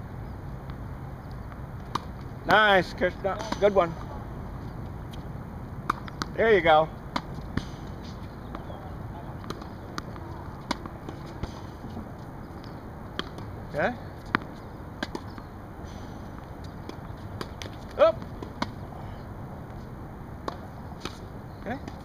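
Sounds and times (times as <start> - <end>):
steady background noise: 0.0 - 22.0
tennis ball bouncing: 0.6 - 18.9, 19.7 - 22.0
tennis racket striking ball: 3.3 - 4.1, 5.8 - 6.4, 7.1 - 8.7, 9.4 - 12.1, 13.1 - 13.5, 14.2 - 15.4.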